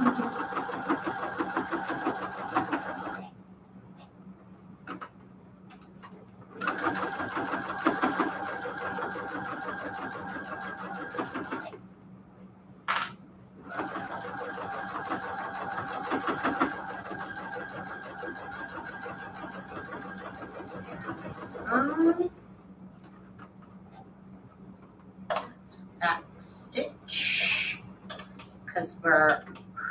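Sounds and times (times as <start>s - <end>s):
sewing machine stitching: 0.0s - 3.2s, 6.6s - 11.8s, 13.7s - 22.1s
sewing machine whir stopping: 0.0s - 3.2s, 6.6s - 11.7s, 13.7s - 21.6s.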